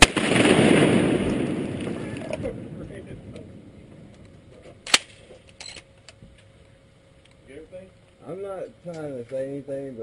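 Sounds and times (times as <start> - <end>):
shotgun shot: 0.0 - 1.6, 4.9 - 5.2.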